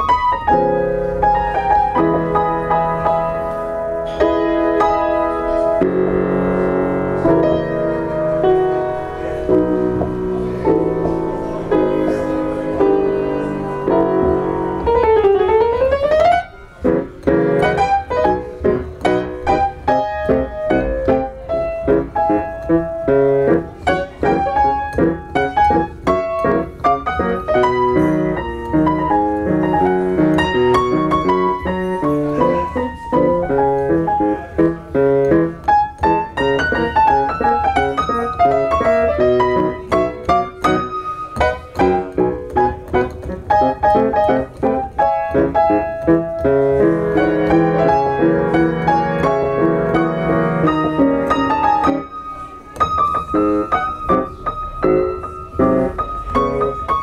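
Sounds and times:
solo piano: 0.0 - 57.0.

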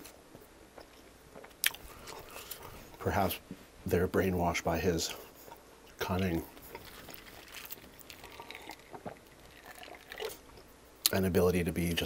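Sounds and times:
person chewing: 0.0 - 3.0, 5.2 - 10.7.

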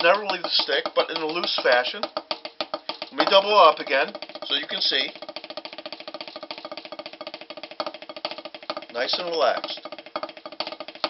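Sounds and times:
drumsticks rolling on practice pad: 0.0 - 11.0.

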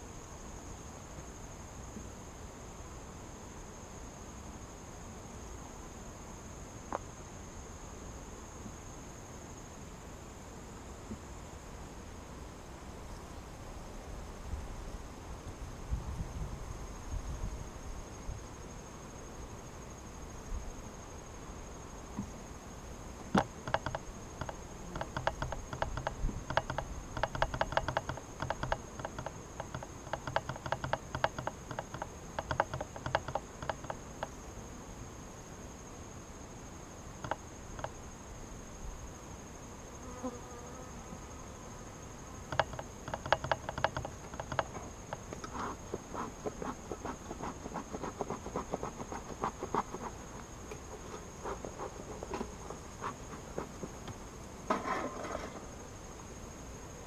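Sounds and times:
honeybees buzzing: 40.0 - 54.6.

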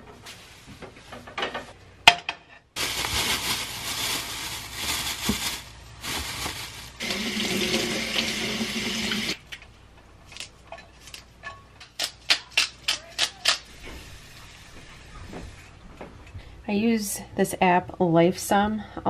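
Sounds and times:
plastic bag rustling: 2.8 - 8.4.

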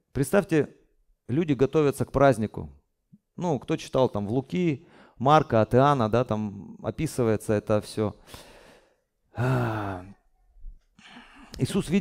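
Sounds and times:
man sighing: 9.3 - 10.2.

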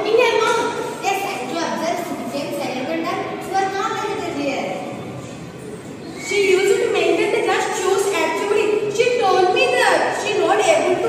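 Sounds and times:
girl speaking: 0.0 - 4.9, 6.2 - 11.0
faint room noise: 0.0 - 11.0.

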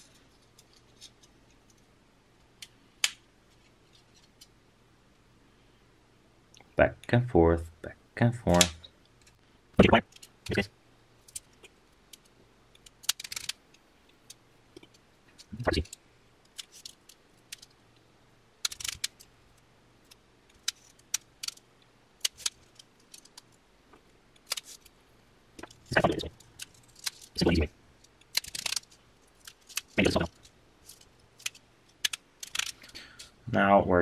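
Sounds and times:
wire clicking and scraping on membrane: 11.2 - 17.8, 18.6 - 19.3, 20.0 - 23.6, 24.3 - 24.9, 25.6 - 33.3.

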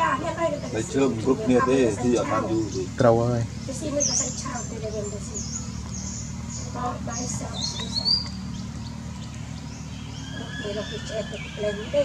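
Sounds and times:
macaques chattering: 0.0 - 12.0
steady low rumble: 0.0 - 12.0
macaques squeaking: 3.7 - 12.0.

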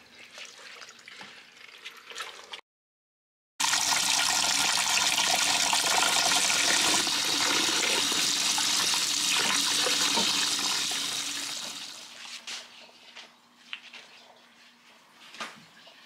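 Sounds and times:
tap water splashing into pot: 3.6 - 11.8.

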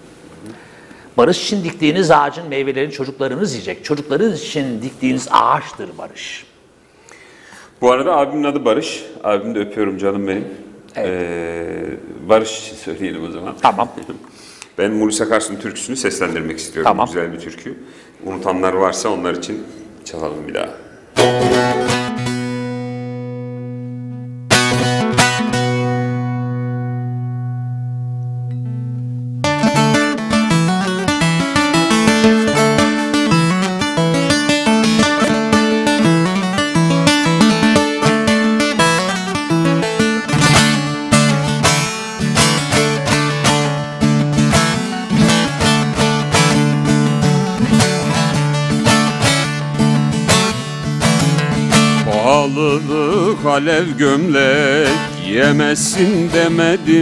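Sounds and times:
long-necked lute playing: 21.2 - 57.0.

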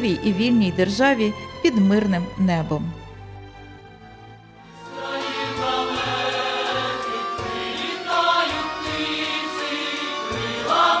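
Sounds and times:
choir singing over a beat: 4.8 - 11.0.

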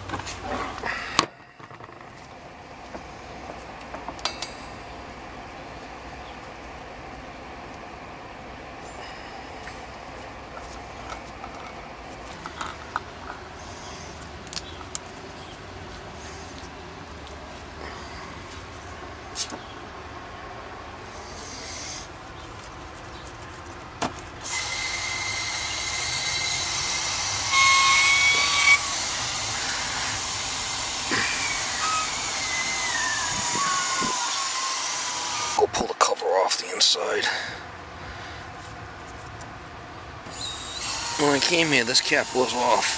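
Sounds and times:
hoses and fittings clicking: 14.2 - 15.2
gas hissing through hoses: 24.4 - 34.5.

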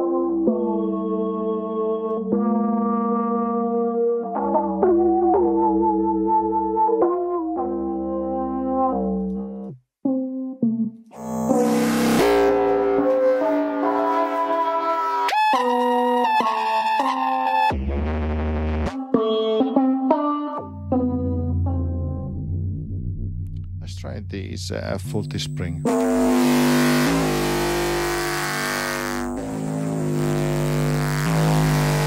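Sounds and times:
harsh buzzy synth with hiss: 11.2 - 12.9, 25.9 - 32.0
brassy resonant synth tones: 11.2 - 15.3, 25.8 - 32.0.

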